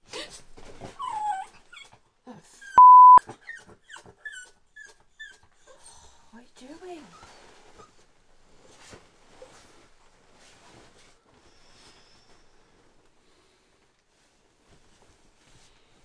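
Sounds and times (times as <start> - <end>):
small dog whimpering and whining: 1.0 - 2.0, 2.6 - 6.0
censor bleep: 2.8 - 3.2.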